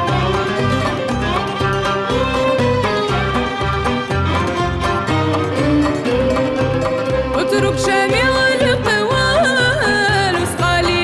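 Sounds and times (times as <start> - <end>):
instrumental accompaniment with low beat: 0.0 - 9.3
woman singing ornamented melody: 6.1 - 11.0.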